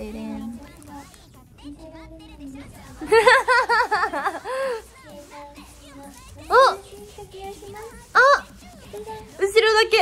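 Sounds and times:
faint background chatter: 0:00.0 - 0:10.0.

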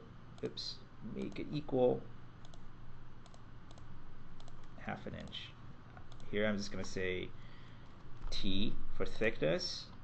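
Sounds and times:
computer mouse clicking: 0:02.4 - 0:07.0, 0:07.8 - 0:08.4.

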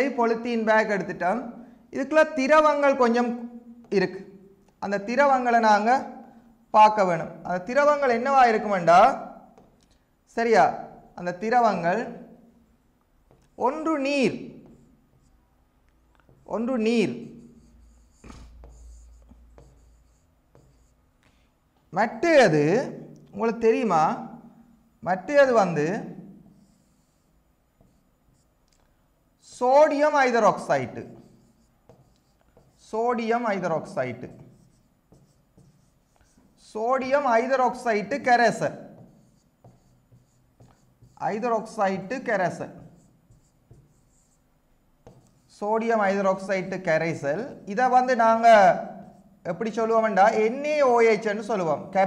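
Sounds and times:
stylus writing on tablet screen: 0:06.9 - 0:09.9, 0:13.1 - 0:15.4, 0:16.1 - 0:21.1, 0:25.2 - 0:28.6, 0:29.4 - 0:50.8
pen scratching on paper: 0:14.6 - 0:15.3, 0:16.3 - 0:21.0, 0:26.5 - 0:28.5, 0:30.5 - 0:33.0, 0:33.6 - 0:44.4, 0:45.0 - 0:45.6.

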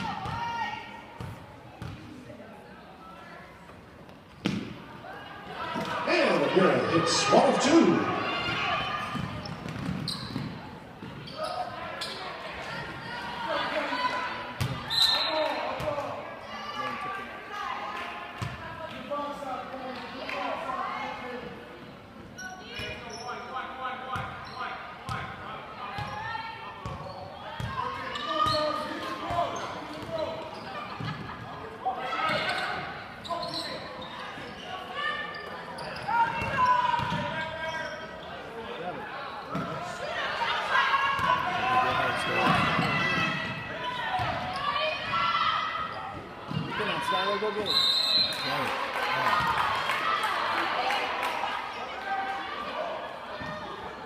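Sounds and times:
voices of players and spectators: 0:00.0 - 0:54.0.

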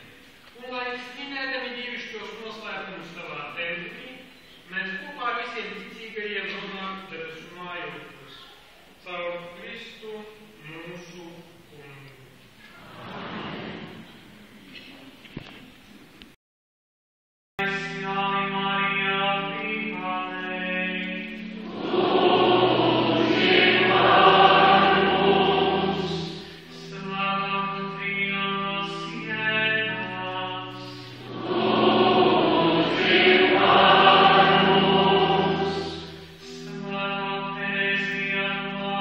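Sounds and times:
church choir singing: 0:17.7 - 0:39.0.

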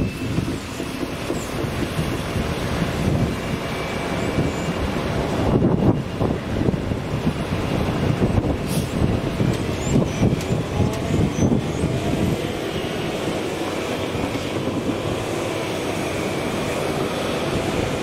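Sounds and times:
diesel locomotive rumbling: 0:00.0 - 0:18.0.

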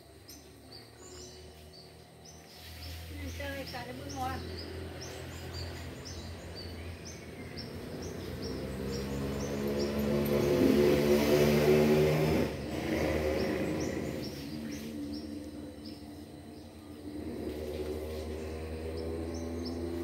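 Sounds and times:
birds chirping: 0:00.0 - 0:20.0
chainsaw engine running: 0:07.6 - 0:14.9, 0:17.0 - 0:20.0.

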